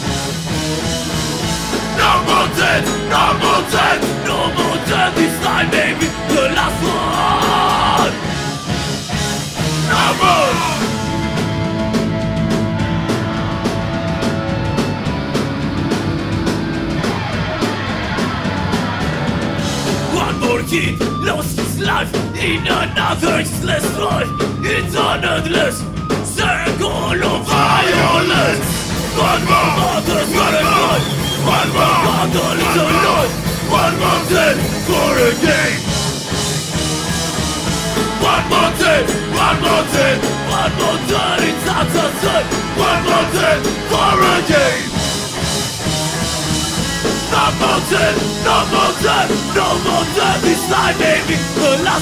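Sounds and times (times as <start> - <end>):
distorted electric guitar chords: 0.0 - 24.6, 27.1 - 52.0
drums with cymbal crashes: 0.0 - 24.6, 25.6 - 52.0
bass guitar: 0.0 - 52.0
punk band playing: 0.0 - 52.0
person singing: 1.9 - 8.3, 9.9 - 11.0, 20.1 - 36.0, 38.1 - 45.0, 47.1 - 52.0.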